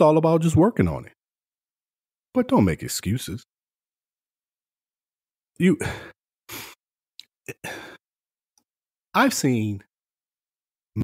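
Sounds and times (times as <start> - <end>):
person sighing into microphone: 5.8 - 6.8, 7.5 - 8.0.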